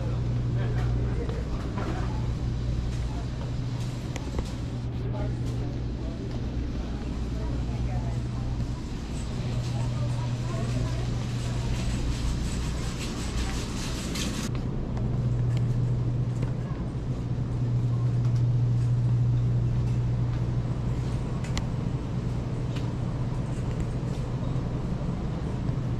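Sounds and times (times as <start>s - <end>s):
low electrical hum: 0.0s - 25.9s.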